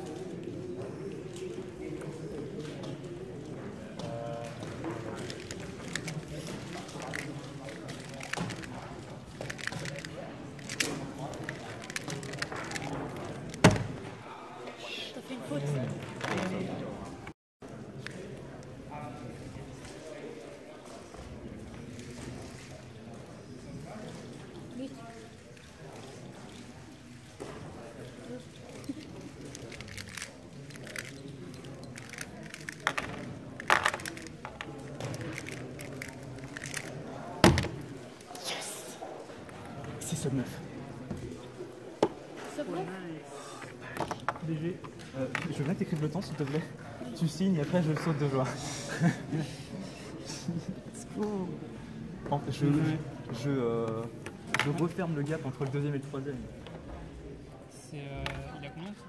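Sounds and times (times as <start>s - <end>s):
puzzle cube clicking: 5.2s - 13.8s, 29.4s - 37.7s.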